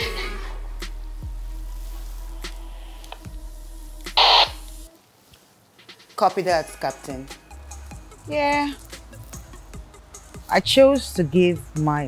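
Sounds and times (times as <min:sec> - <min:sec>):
two-way radio squelch static: 0:04.2 - 0:04.7.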